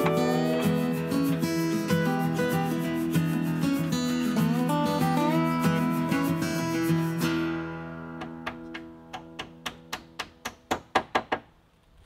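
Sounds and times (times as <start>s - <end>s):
acoustic guitar music: 0.0s - 10.7s
hammer striking wooden dowel: 8.2s - 11.5s.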